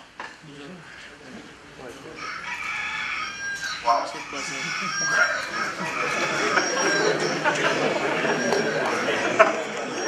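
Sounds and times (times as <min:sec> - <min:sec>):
audience murmur: 0:03.8 - 0:10.0.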